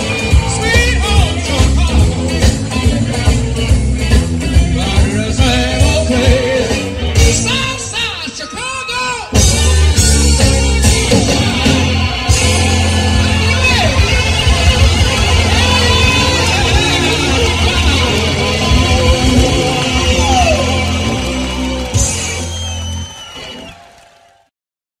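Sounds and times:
ringing electric guitar: 0.0s - 8.2s, 9.4s - 23.9s
blues-rock band playing: 0.0s - 8.6s, 9.2s - 23.8s.

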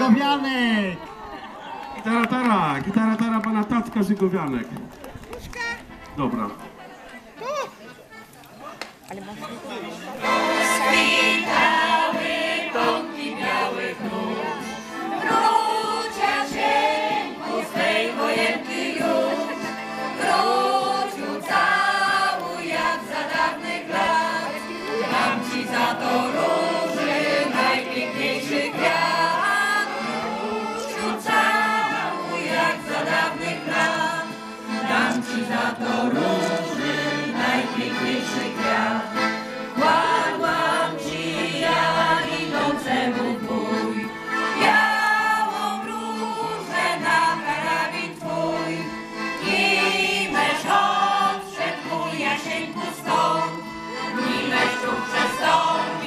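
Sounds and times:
choir singing: 10.2s - 56.0s.

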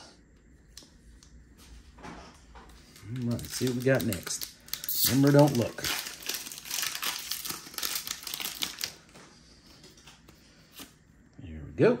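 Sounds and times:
foil wrapper crinkling and tearing: 2.8s - 9.2s.

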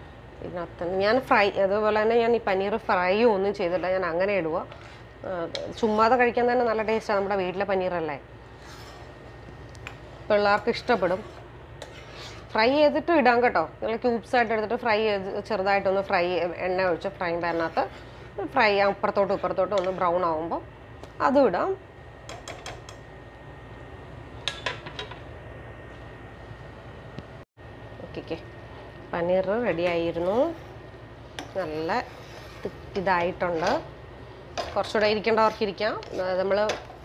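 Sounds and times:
woman speaking: 0.4s - 8.2s, 10.3s - 11.3s, 12.6s - 20.6s, 21.2s - 21.8s, 28.0s - 28.5s, 29.1s - 30.6s, 31.6s - 32.1s, 33.0s - 33.9s, 34.8s - 36.8s.

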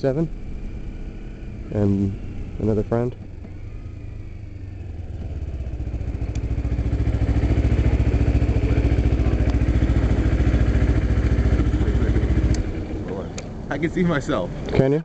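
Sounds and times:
motorcycle engine idling: 0.0s - 14.7s.

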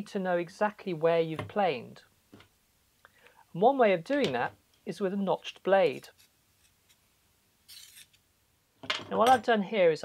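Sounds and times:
metal blade scraping: 7.7s - 8.2s.

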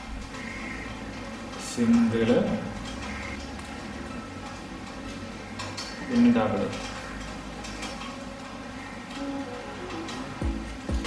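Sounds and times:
steady low hum: 0.0s - 11.0s
paper rustling and clicking: 0.1s - 9.3s.

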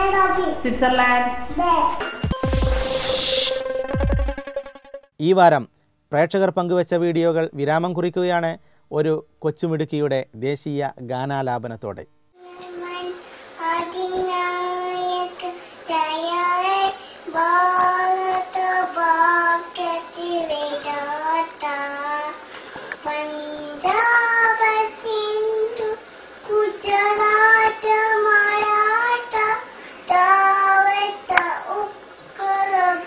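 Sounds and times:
toddler singing: 12.4s - 22.4s, 23.0s - 33.0s.

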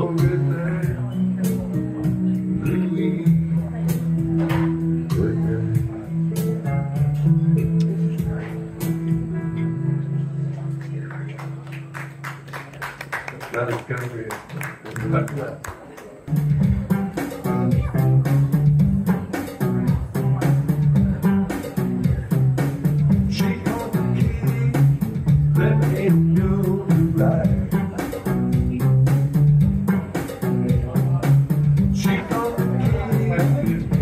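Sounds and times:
low bass line: 0.0s - 11.7s, 16.3s - 34.0s.

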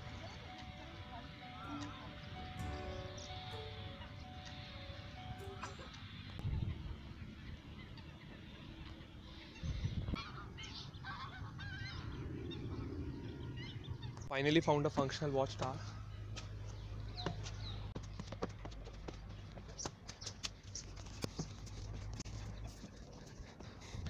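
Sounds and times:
waterbirds honking: 0.0s - 6.3s
steady low rumble: 0.0s - 10.2s.

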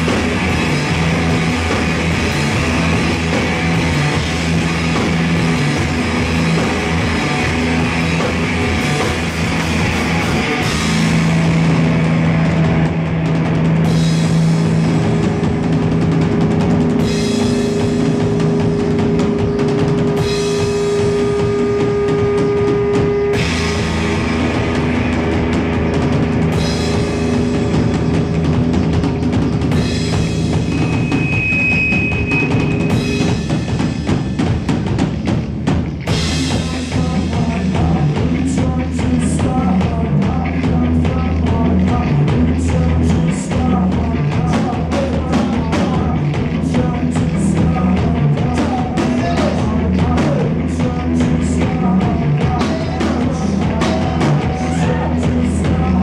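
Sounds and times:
electric guitar droning notes: 0.0s - 33.7s
drum kit steady pattern: 0.0s - 56.0s.

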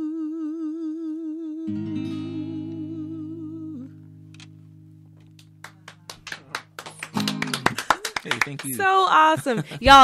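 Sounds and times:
acoustic guitar chord ringing: 1.7s - 7.7s
people clapping: 5.3s - 9.4s.

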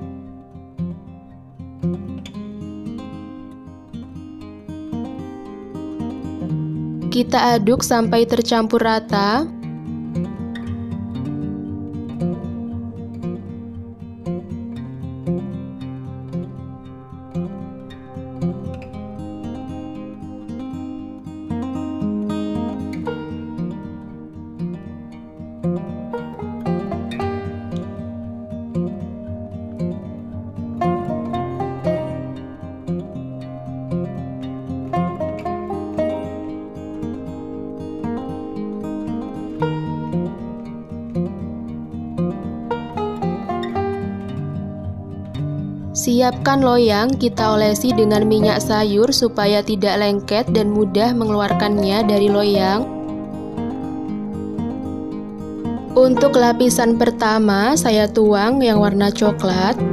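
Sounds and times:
plucked strings music: 0.0s - 59.9s.

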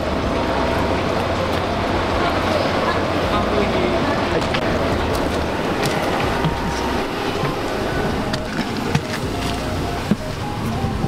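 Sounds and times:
bus engine rumble: 0.0s - 11.0s.

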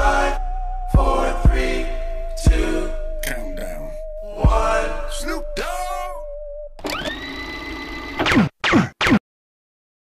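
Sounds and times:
machine-like whine: 6.8s - 8.3s.

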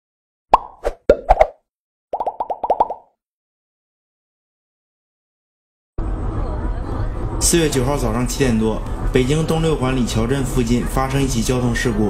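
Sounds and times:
cartoon plop pops: 0.5s - 1.6s, 2.2s - 3.1s.

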